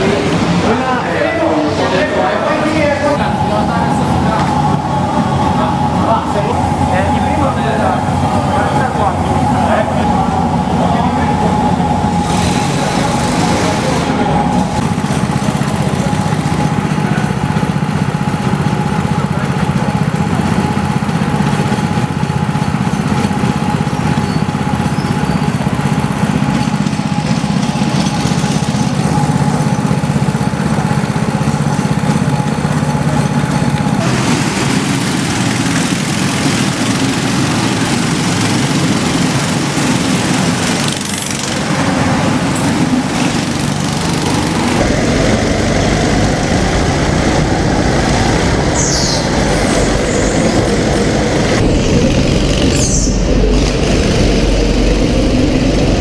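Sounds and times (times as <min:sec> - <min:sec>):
go-kart engines running: 0:00.0 - 0:56.0.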